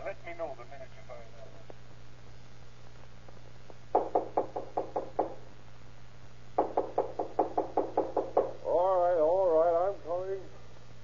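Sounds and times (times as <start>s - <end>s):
knocking on a door: 3.9s - 5.4s, 6.6s - 8.6s
man's wavering voice: 8.6s - 10.6s.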